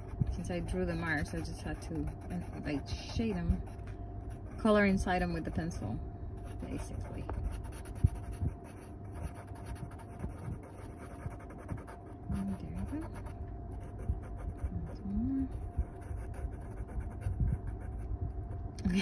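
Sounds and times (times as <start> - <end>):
pencil scratching on paper: 0.0 - 3.7, 6.6 - 13.3.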